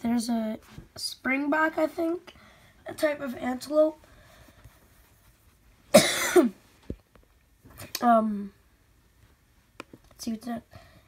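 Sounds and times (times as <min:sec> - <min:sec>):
person coughing: 0:05.9 - 0:06.6.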